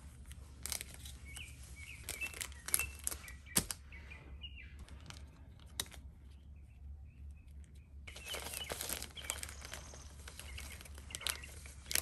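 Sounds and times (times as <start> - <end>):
plastic sleeves crinkling and clicking: 0.1 - 3.8, 4.8 - 6.4, 7.6 - 12.0
birds chirping: 0.8 - 12.0.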